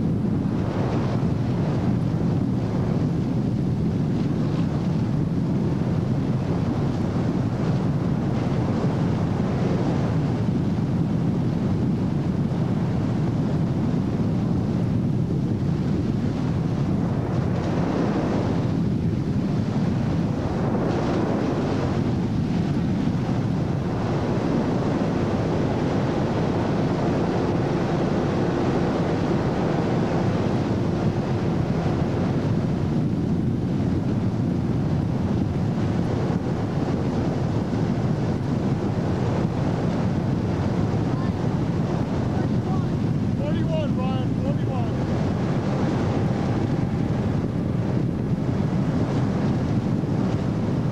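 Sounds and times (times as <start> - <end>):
boat engine: 0.0 - 50.9
rushing water: 0.0 - 50.9
wind buffeting microphone: 0.0 - 50.9.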